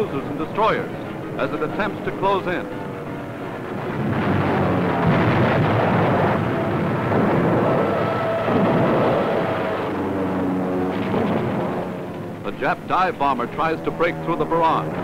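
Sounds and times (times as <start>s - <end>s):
anti-aircraft gunfire: 0.0s - 15.0s
shells bursting: 0.0s - 15.0s.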